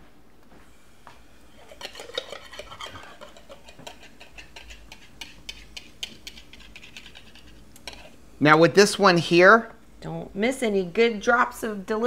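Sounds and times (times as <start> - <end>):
kitchen utensils and dishes clinking: 1.6 - 8.0.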